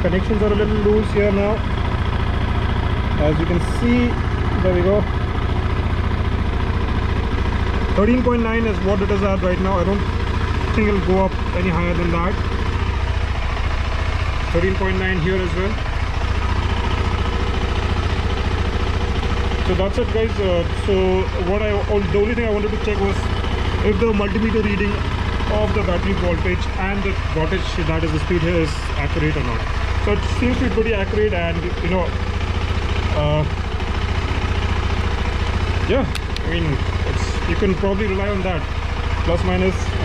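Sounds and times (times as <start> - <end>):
motorcycle engine idling: 0.0 - 40.0.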